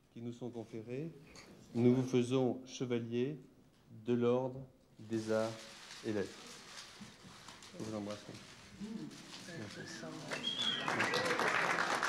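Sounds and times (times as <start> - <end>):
quiet human voices: 8.7 - 11.7.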